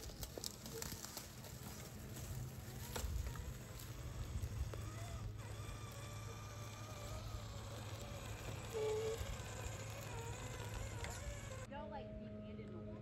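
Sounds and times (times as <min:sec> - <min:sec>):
electric motor and gear whine: 0:00.0 - 0:11.7.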